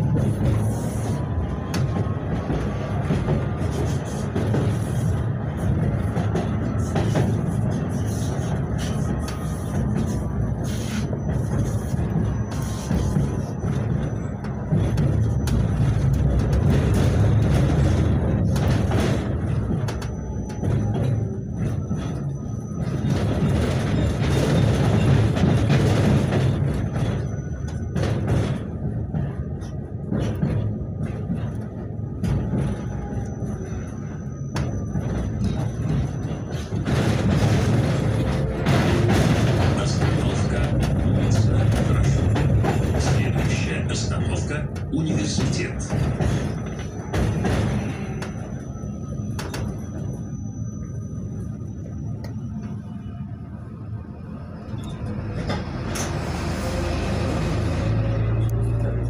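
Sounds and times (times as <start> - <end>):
tram rumbling on track: 0.0 - 59.0.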